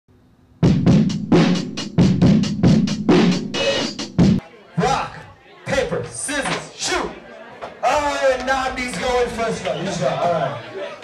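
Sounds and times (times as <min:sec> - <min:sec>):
drum kit beat: 0:00.6 - 0:04.4.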